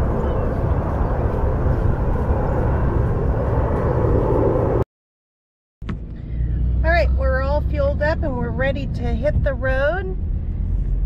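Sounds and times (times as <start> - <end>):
diesel engine low rumble: 0.0 - 4.8, 5.8 - 11.0
woman talking: 6.8 - 10.2.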